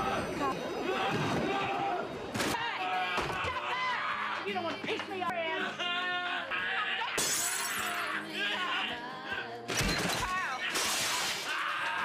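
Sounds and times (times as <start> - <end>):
glass shattering: 7.2 - 8.1, 9.7 - 12.0.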